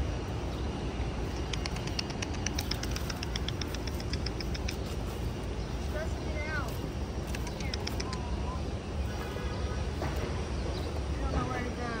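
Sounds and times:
low outdoor rumble: 0:00.0 - 0:12.0
small bird chirping: 0:00.4 - 0:12.0.

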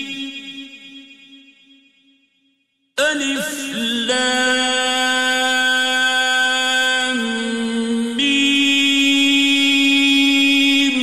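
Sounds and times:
man reciting melodically: 0:03.0 - 0:11.0.

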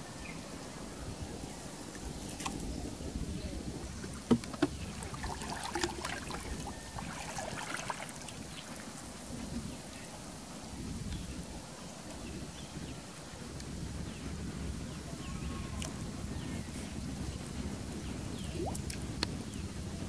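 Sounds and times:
water sloshing and splashing: 0:04.0 - 0:09.6.

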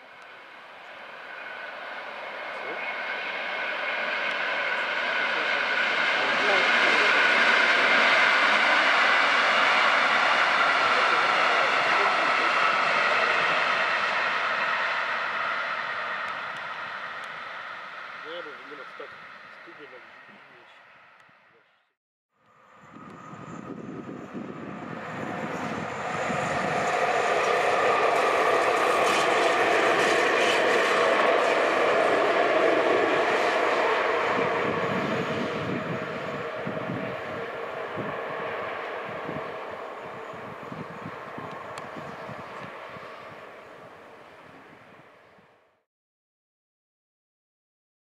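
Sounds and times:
electric locomotive motor hum: 0:00.0 - 0:21.8, 0:22.4 - 0:45.8.

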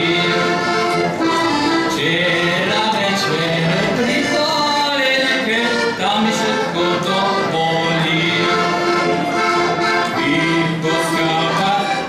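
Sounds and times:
button accordion playing folk tune: 0:00.0 - 0:12.0.

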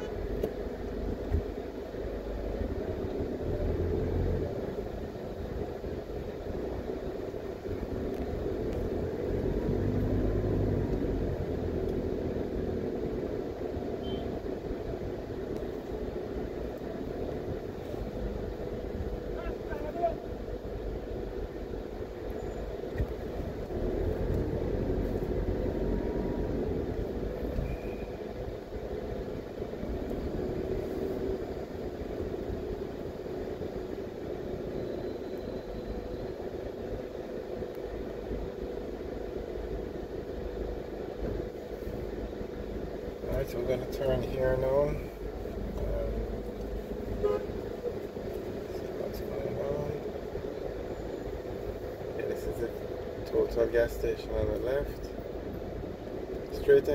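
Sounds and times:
car engine hum and road rumble: 0:00.0 - 0:56.9.

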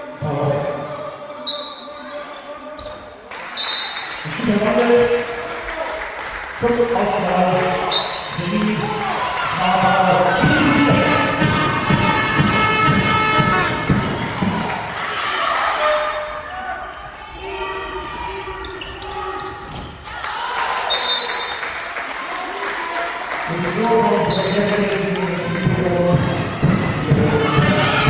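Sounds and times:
ball bouncing on hall floor: 0:10.3 - 0:14.8.

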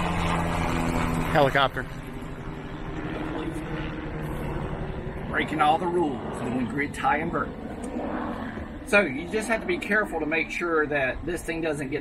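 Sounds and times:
helicopter flying by: 0:00.0 - 0:12.0.

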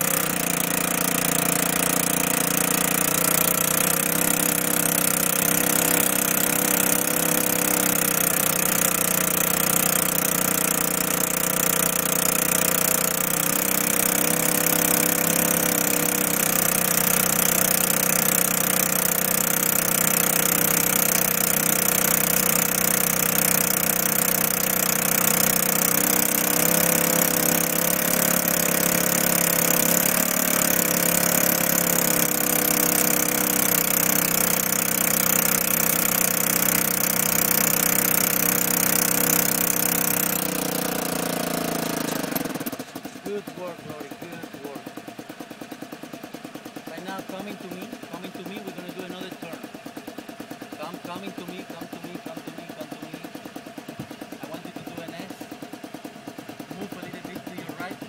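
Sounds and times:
small engine running under load: 0:00.0 - 0:58.0.

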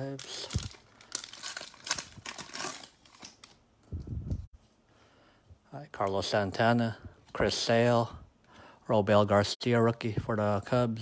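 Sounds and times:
plastic wrapper tearing and crinkling: 0:00.0 - 0:03.6.

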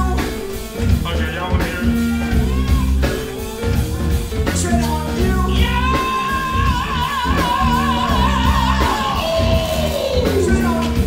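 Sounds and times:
funk band playing: 0:00.0 - 0:11.0
person singing: 0:00.0 - 0:11.0.

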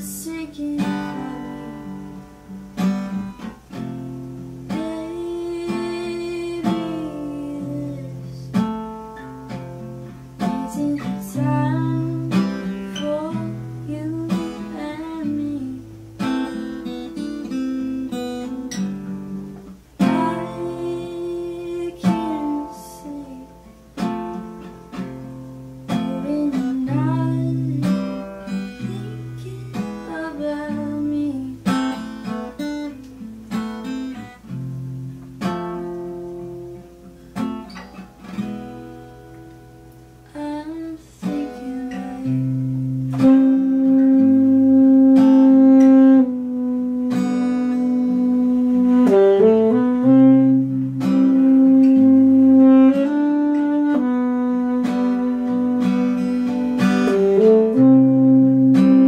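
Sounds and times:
acoustic guitar strumming chords: 0:00.0 - 0:59.0
saxophone long held notes: 0:41.3 - 0:59.0.

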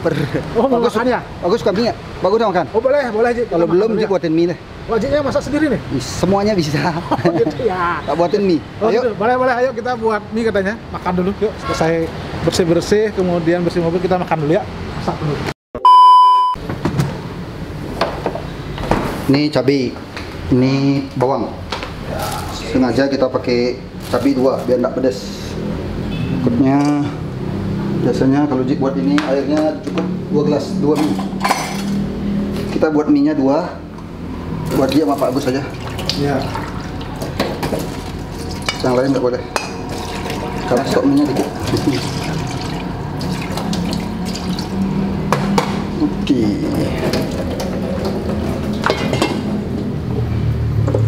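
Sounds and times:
steady room hum: 0:16.5 - 0:51.0
faucet water filling a glass: 0:39.8 - 0:45.0.

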